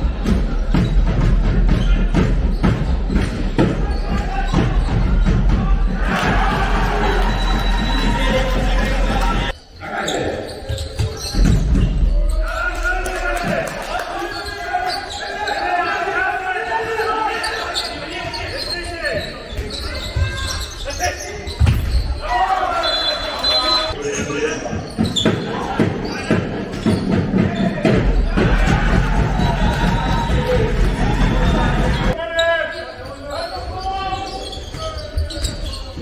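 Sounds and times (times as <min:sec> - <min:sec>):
people shouting: 0:03.7 - 0:10.3, 0:27.4 - 0:32.2.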